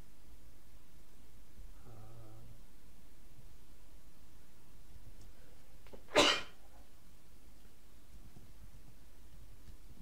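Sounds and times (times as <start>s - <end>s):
person sneezing: 6.1s - 6.6s.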